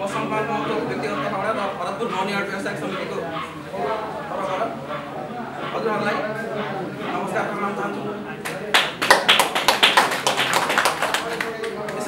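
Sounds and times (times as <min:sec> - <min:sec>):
audience clapping: 0:08.4 - 0:12.0.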